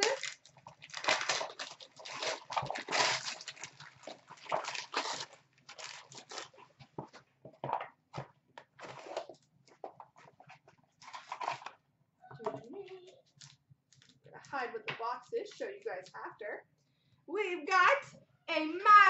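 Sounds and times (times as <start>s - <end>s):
wrapper crinkling: 0.0s - 6.8s.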